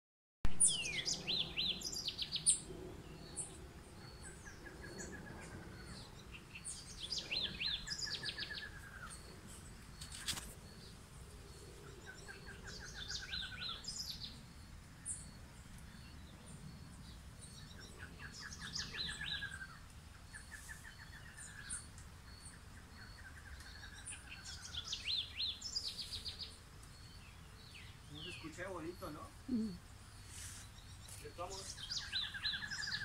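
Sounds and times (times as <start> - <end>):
birds singing: 0.5 - 33.0.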